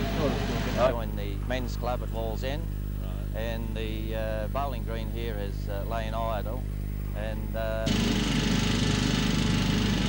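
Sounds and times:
man speaking: 0.0s - 6.6s
steady low hum: 0.0s - 10.0s.

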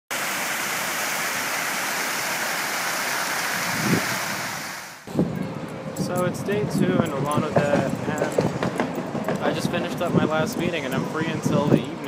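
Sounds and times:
fountain water splashing: 0.1s - 5.1s.

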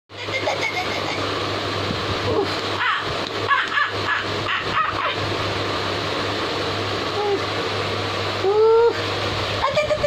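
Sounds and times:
steady hum and hiss: 0.1s - 10.0s.

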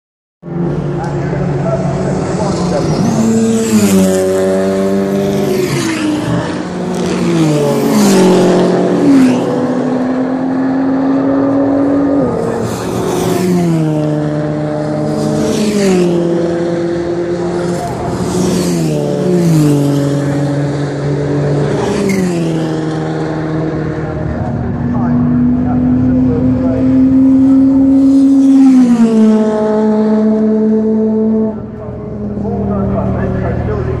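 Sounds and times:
race cars passing by: 0.4s - 34.0s.

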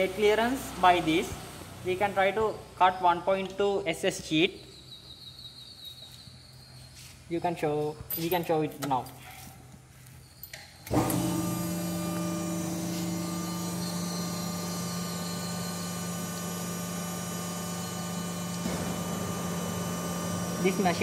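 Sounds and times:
hydraulic pump motor humming: 10.9s - 21.0s.

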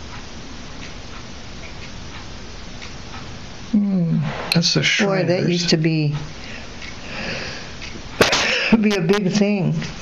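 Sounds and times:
steady hiss: 3.4s - 8.7s
person's voice: 3.8s - 6.3s.

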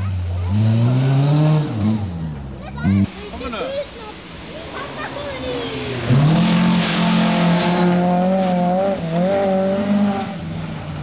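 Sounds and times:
rally car engine at high revs: 0.0s - 3.5s, 4.4s - 11.0s.

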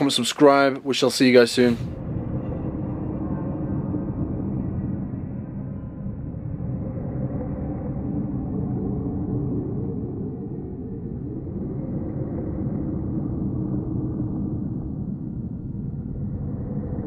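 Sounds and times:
low rumbling ambient drone: 0.0s - 17.0s.

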